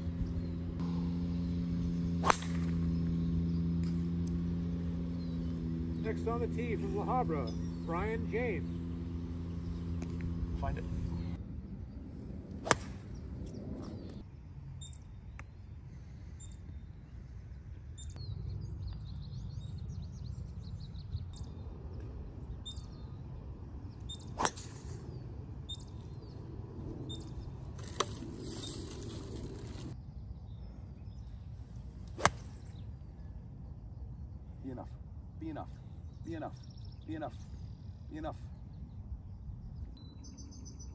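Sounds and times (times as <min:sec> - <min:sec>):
low rumble: 0:00.0 - 0:14.2
birds chirping: 0:00.0 - 0:40.9
golf club striking ball: 0:00.8 - 0:06.0.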